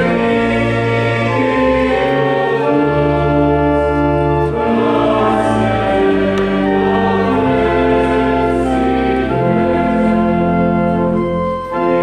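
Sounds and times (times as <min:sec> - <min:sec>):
choir singing sustained chords: 0:00.0 - 0:12.0
low organ notes: 0:00.0 - 0:12.0.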